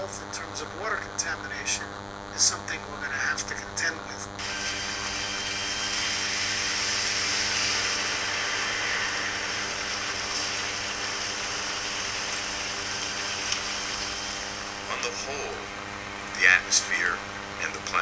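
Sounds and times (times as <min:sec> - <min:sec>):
low steady hum: 0:00.0 - 0:18.0
heavy rain pouring: 0:04.4 - 0:15.0.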